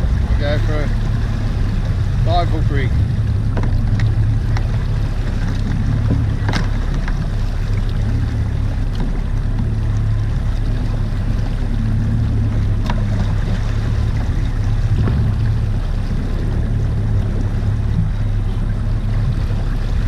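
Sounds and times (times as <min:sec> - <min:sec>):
boat engine humming: 0:00.0 - 0:20.0
water noise: 0:00.0 - 0:20.0
wind: 0:00.0 - 0:20.0.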